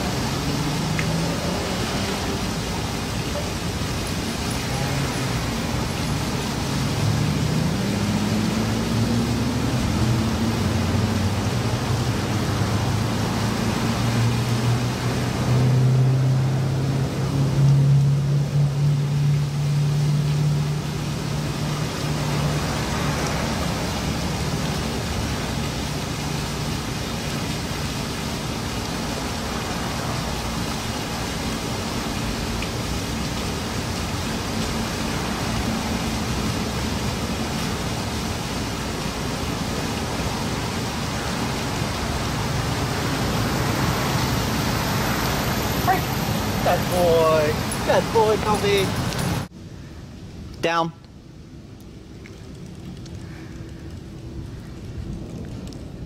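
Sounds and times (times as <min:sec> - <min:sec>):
traffic roar: 0:00.0 - 0:56.0
vehicle engine humming: 0:41.8 - 0:49.5.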